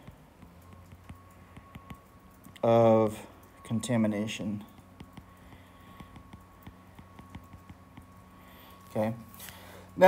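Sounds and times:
stylus tapping on tablet screen: 0.0s - 2.2s, 4.7s - 8.2s
low steady hum: 0.0s - 10.0s.

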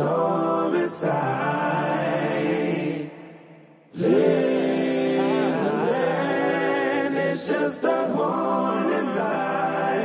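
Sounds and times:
layered voices singing a chord: 0.0s - 10.0s.

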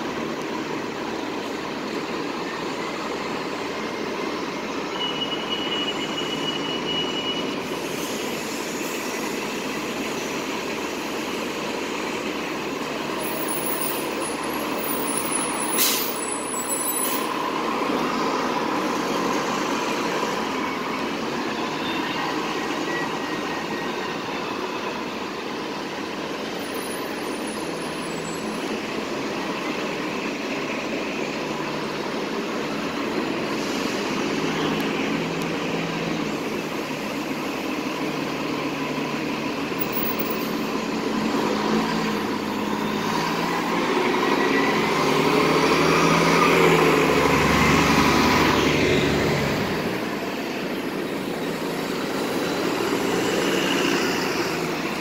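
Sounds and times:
bus engine and tyre noise: 0.0s - 55.0s.

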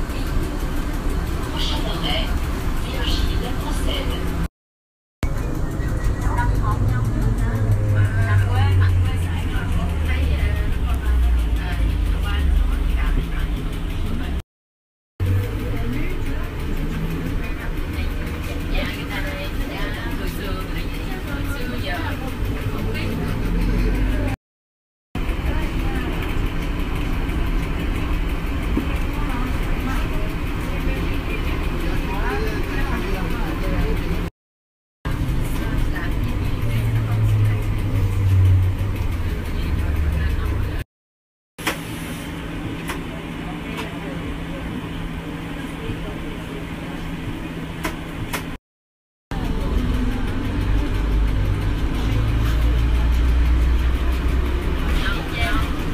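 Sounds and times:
road noise: 0.0s - 4.5s, 5.2s - 14.4s, 15.2s - 24.4s, 25.2s - 34.3s, 35.1s - 40.8s, 49.3s - 55.9s
trolleybus electric hum: 0.0s - 4.5s, 5.2s - 14.4s, 15.2s - 24.4s, 25.2s - 34.3s, 35.1s - 40.8s, 41.6s - 48.6s, 49.3s - 55.9s.

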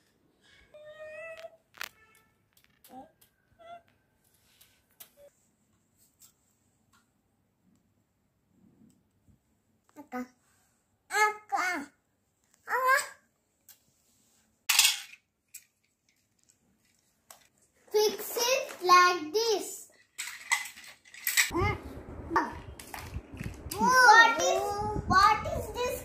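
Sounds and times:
child's voice: 2.8s - 3.8s, 9.9s - 10.4s, 11.1s - 12.0s, 12.7s - 13.2s, 17.9s - 19.9s, 21.5s - 22.7s, 23.7s - 26.0s
plastic blocks clattering and clicking: 19.9s - 21.5s.

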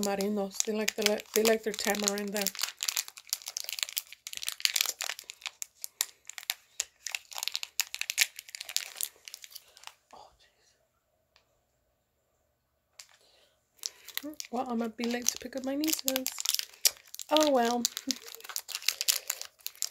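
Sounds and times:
candy wrapper crinkling: 0.0s - 10.0s, 13.0s - 19.9s.

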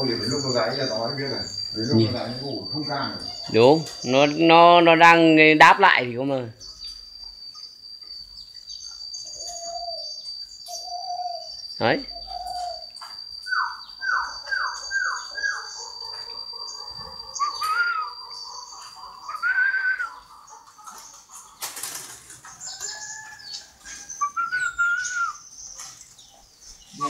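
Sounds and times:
falling whistled notes: 0.0s - 4.5s, 9.1s - 20.2s, 23.9s - 25.5s
doves calling: 0.0s - 27.0s
warbled chirps: 0.0s - 27.0s.

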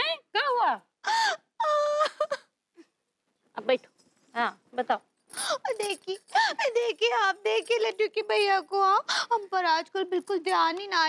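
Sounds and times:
woman's drawn-out vocal cries: 1.0s - 2.5s.

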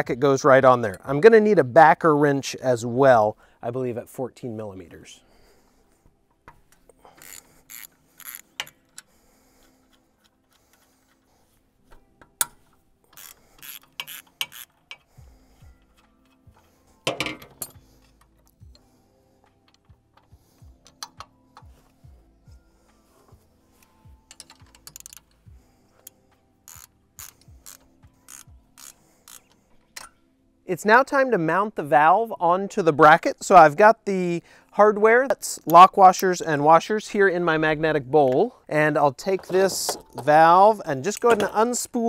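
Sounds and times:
ratcheting wrench clicking: 7.1s - 9.1s, 12.4s - 15.1s, 24.3s - 30.2s
metal clinks: 17.0s - 18.4s.

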